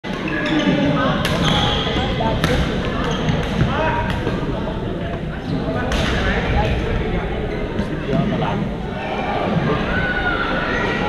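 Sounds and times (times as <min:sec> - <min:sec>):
sneakers squeaking on court: 0:00.2 - 0:04.3.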